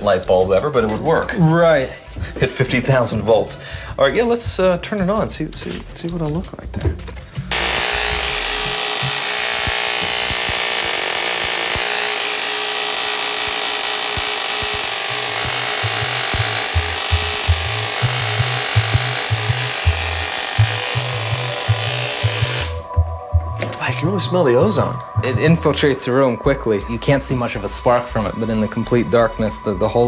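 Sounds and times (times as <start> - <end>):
music bassline: 0.0 - 30.0
hissing electrical buzz: 7.5 - 22.9.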